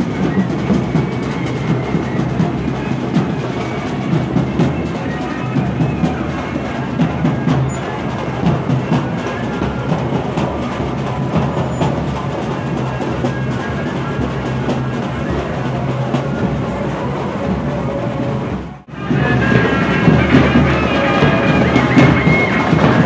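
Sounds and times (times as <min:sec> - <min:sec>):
procession drums: 0:00.0 - 0:23.0.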